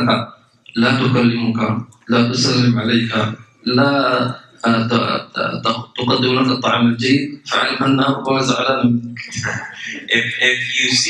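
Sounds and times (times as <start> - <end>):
man speaking through a microphone: 0.0 - 11.0.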